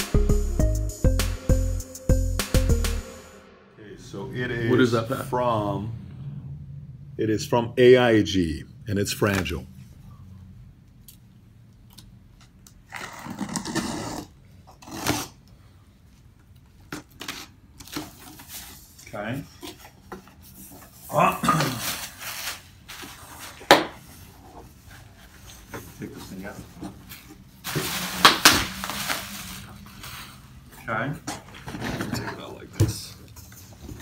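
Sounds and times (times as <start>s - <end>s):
scissors cutting packing tape: 12.8s - 15.4s
bubble wrap crinkling: 27.6s - 30.2s.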